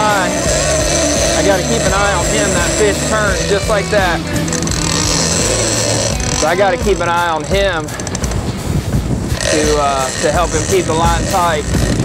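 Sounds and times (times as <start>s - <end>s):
outboard engines humming: 0.0s - 12.0s.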